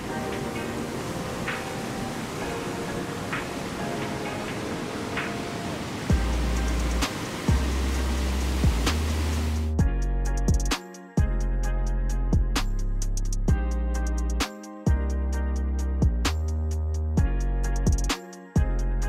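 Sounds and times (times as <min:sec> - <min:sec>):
waterfall rushing: 0:00.0 - 0:09.8
background music with beat: 0:00.0 - 0:19.0.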